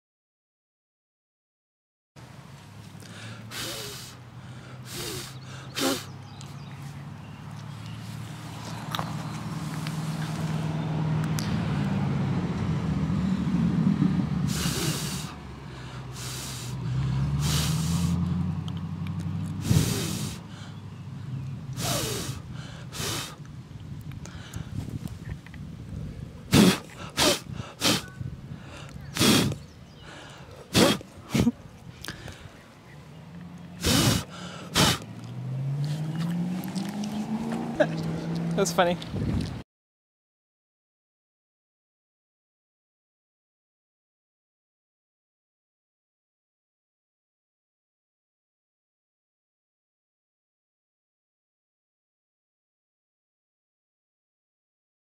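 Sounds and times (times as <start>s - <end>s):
vehicle engine hum: 2.2s - 39.6s
person blowing sharp puffs: 3.0s - 6.2s, 14.4s - 18.3s, 19.5s - 20.7s, 21.8s - 23.5s, 26.5s - 32.5s, 33.8s - 35.2s.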